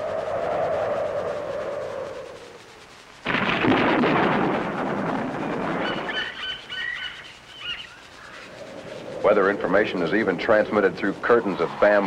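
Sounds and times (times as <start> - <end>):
loud burst of noise: 0.0 - 12.0.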